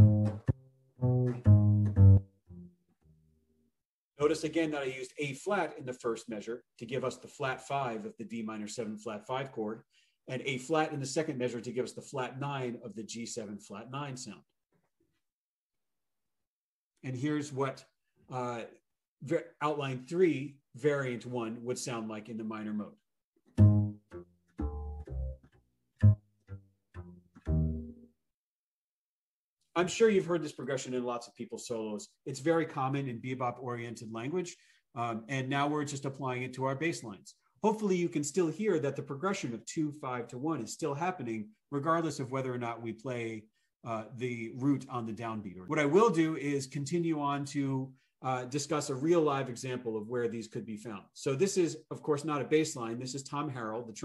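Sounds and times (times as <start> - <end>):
double bass walking bass line: 0.0 - 2.8, 23.6 - 28.1.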